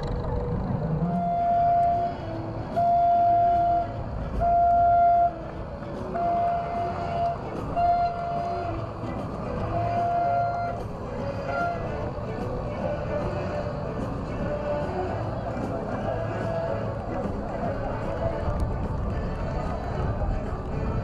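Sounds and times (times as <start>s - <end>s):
steady low rumble: 0.0s - 21.0s
horn blasts: 1.0s - 15.2s.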